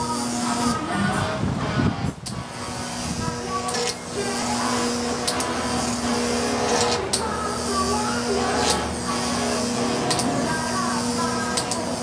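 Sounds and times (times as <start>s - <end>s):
electric buzz-hum: 0.0s - 12.0s.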